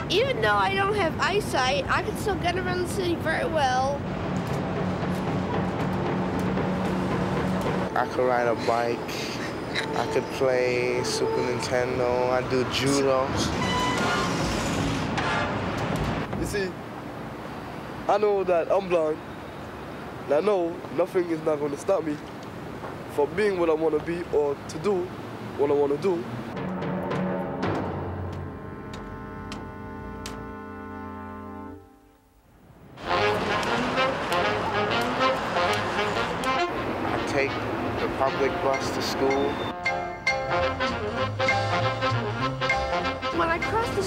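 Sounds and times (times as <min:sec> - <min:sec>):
passing cars and trucks: 0:00.0 - 0:44.0
traffic: 0:00.0 - 0:44.0
background music: 0:02.0 - 0:14.0, 0:26.5 - 0:32.3, 0:33.0 - 0:44.0
people's voices: 0:07.9 - 0:13.6.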